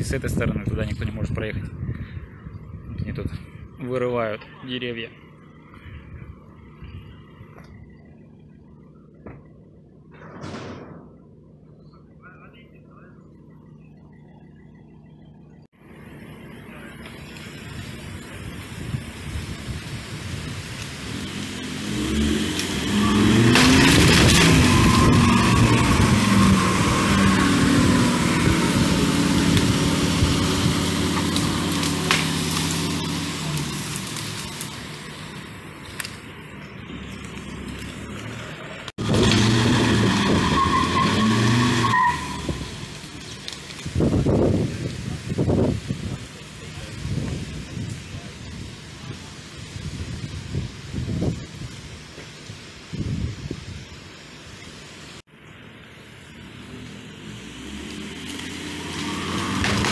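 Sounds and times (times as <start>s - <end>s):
tyres on wet road: 15.7s - 59.9s.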